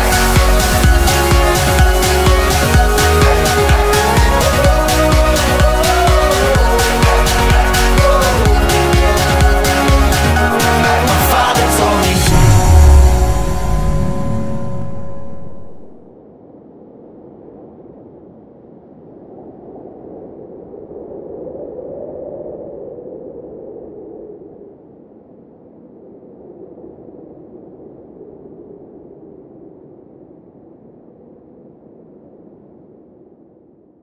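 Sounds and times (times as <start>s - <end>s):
muffled ambient noise: 12.2s - 20.3s.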